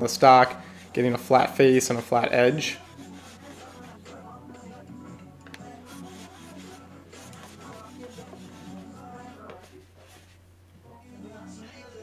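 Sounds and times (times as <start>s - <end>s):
quiet background music: 0.0s - 12.0s
hand plane shaving wood: 3.0s - 4.0s, 5.9s - 9.0s.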